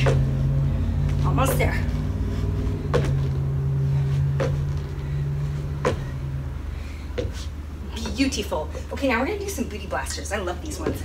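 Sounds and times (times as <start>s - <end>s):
feet thudding on wooden deck: 0.0s - 8.4s, 10.6s - 11.0s
steady low hum: 0.0s - 11.0s.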